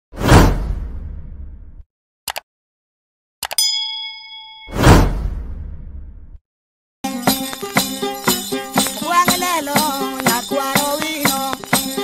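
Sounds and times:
whoosh sound effect: 4.7s - 6.4s.

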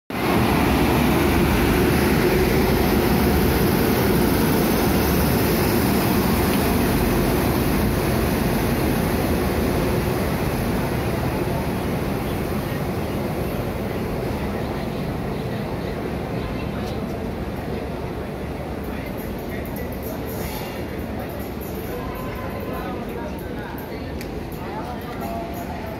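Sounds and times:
train wheels rumbling past: 0.1s - 25.9s.

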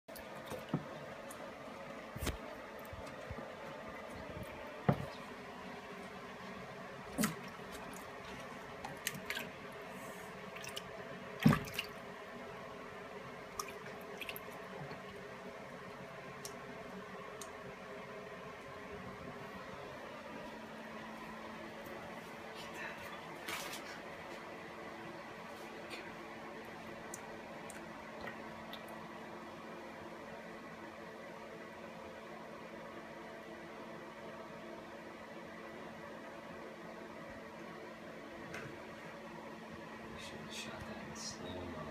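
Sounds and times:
faint steady hum: 0.1s - 41.9s
alligator splashing in water: 11.4s - 12.0s.

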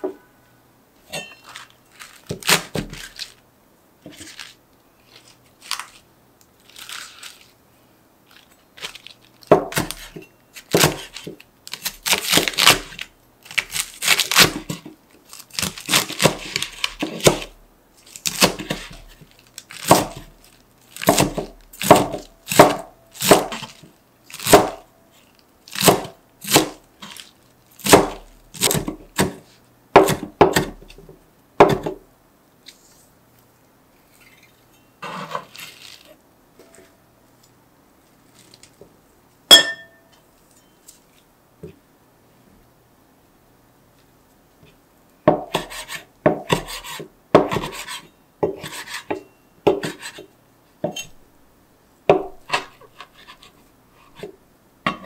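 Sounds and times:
cleaver chopping lettuce on board: 2.3s - 3.2s, 9.5s - 14.9s, 15.5s - 17.5s, 18.2s - 20.4s, 21.0s - 24.9s, 25.7s - 27.2s, 27.8s - 31.0s, 31.6s - 32.0s, 45.3s - 50.2s.

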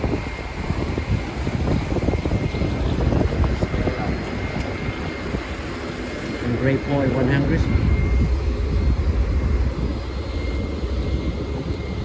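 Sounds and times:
boat engine drone: 0.0s - 12.0s
wind: 0.0s - 12.0s.

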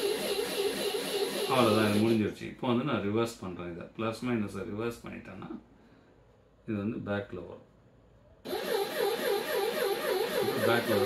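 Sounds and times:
small motor whirring whine: 0.0s - 2.2s, 8.5s - 11.0s.

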